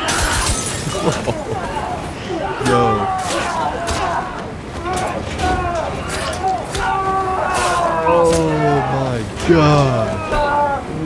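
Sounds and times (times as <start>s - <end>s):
voices speaking: 0.0s - 11.0s.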